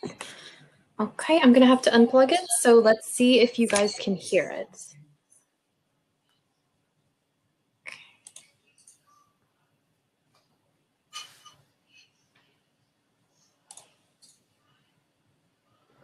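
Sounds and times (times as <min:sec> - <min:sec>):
keyboard and mouse clicks: 0:08.2 - 0:09.0, 0:13.7 - 0:14.4.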